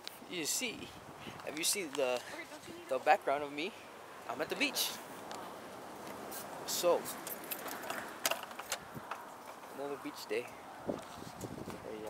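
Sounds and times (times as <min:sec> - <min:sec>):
phone handling clicks and rustles: 0:07.2 - 0:09.8.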